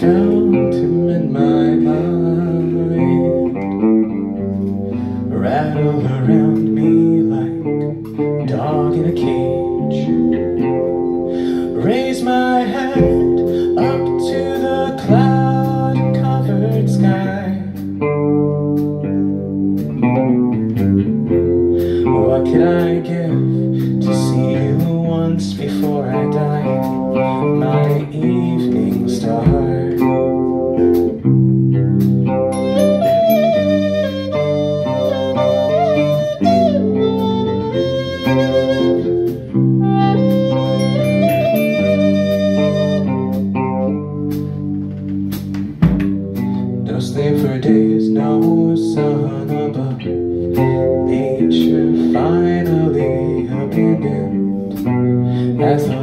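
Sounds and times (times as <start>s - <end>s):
electric bass: 0.0s - 56.0s
electric guitar: 0.0s - 56.0s
drum kit: 12.9s - 23.1s, 23.8s - 47.7s
bright handheld wind instrument: 32.5s - 43.9s.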